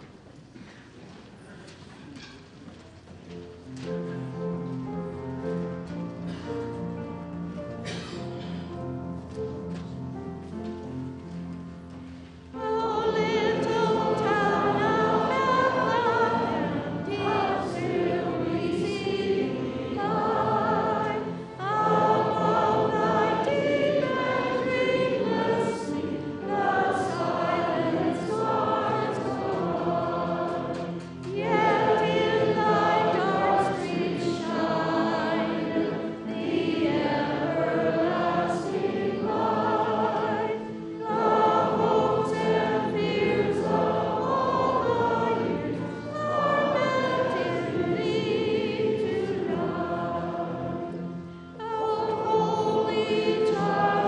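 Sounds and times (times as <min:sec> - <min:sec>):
congregation singing a hymn: 0:12.2 - 0:54.0.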